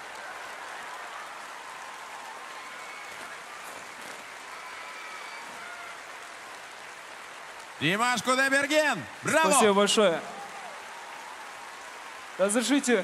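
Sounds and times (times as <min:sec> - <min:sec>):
large audience applauding: 0:00.0 - 0:13.0.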